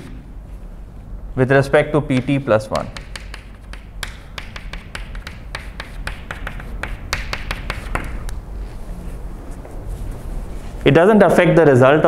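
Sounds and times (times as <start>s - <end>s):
chalk tapping and scraping on blackboard: 2.1s - 8.3s.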